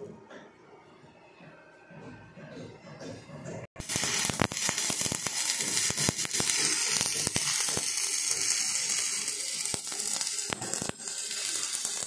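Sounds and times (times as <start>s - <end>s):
welding arc crackling: 3.8s - 12.0s.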